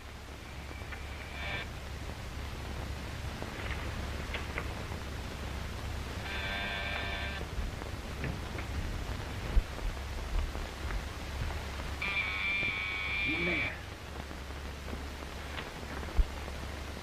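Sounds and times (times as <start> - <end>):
film soundtrack hiss and hum: 0.0 - 17.0
electric buzzer: 6.2 - 7.5, 12.0 - 13.8.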